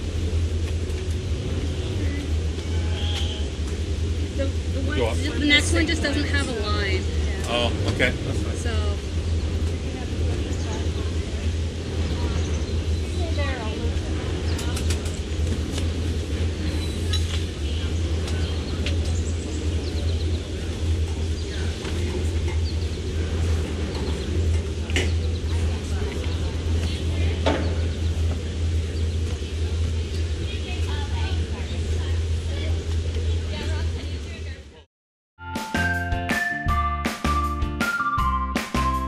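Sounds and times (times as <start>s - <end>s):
boat engine idling: 0.0s - 34.9s.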